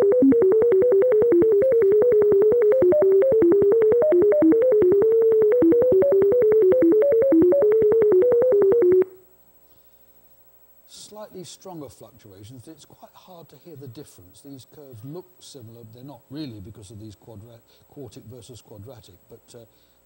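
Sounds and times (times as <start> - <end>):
clicks at note changes: 0.0 - 9.2
sine tone melody: 0.0 - 9.2.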